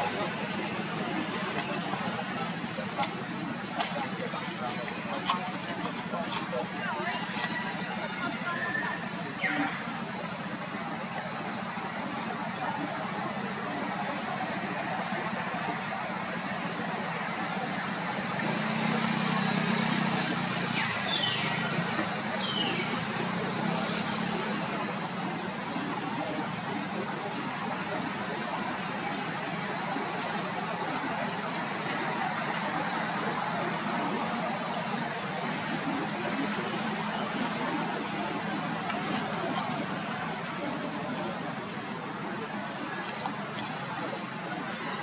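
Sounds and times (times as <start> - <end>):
outdoor background noise: 0.0 - 45.0.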